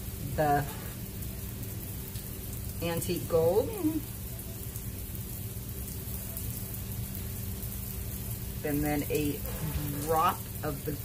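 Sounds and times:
heavy rain heard from indoors: 0.0s - 11.0s
low steady hum: 0.0s - 11.0s.

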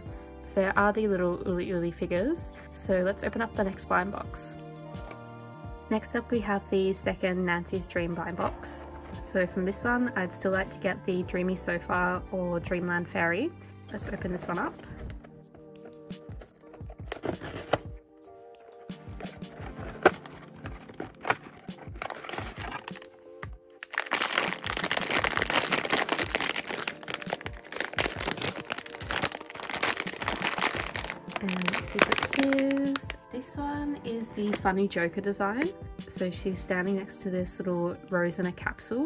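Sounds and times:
soft background music: 0.0s - 39.0s
cardboard box clicks and scrapes: 16.3s - 17.9s, 19.2s - 22.9s
plastic bag crinkling: 18.6s - 33.2s.

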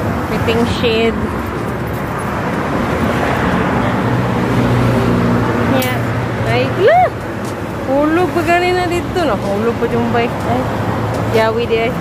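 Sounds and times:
rush of passing vehicles: 0.0s - 12.0s
vehicle engine hum: 0.0s - 12.0s.

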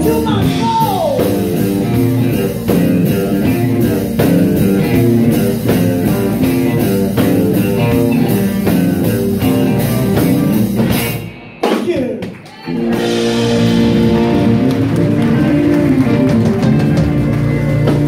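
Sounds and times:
blues-rock band playing: 0.0s - 18.0s.

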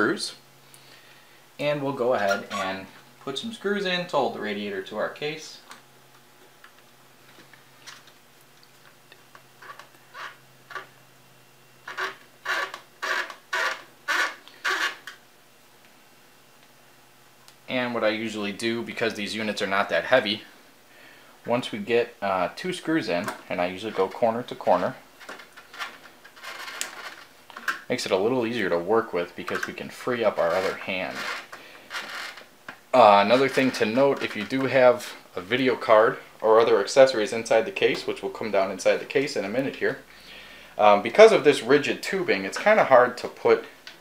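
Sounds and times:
screwdriver scraping screw: 11.9s - 15.0s, 30.5s - 32.4s
screw scraping as turned in: 30.4s - 32.5s.

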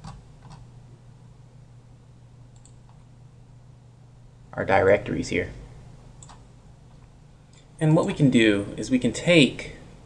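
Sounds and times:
computer mouse clicks: 0.0s - 0.7s, 2.6s - 3.0s, 6.2s - 6.4s
low electrical hum: 0.0s - 10.0s.

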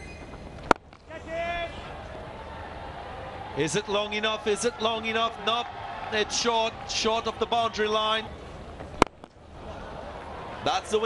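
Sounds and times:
stadium background noise: 0.0s - 11.0s.

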